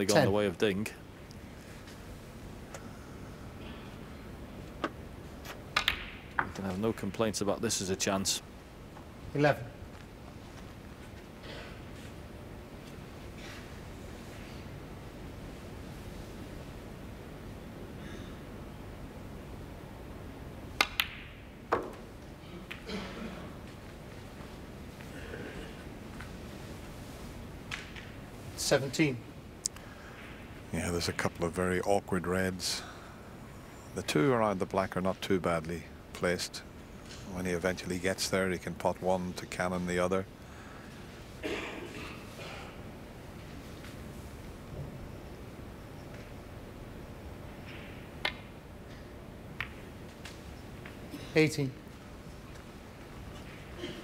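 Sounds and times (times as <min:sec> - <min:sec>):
snooker balls clicking: 0:04.8 - 0:06.6, 0:20.8 - 0:22.9, 0:47.6 - 0:51.0
ball dropping into pocket: 0:05.8 - 0:06.6, 0:49.6 - 0:49.9.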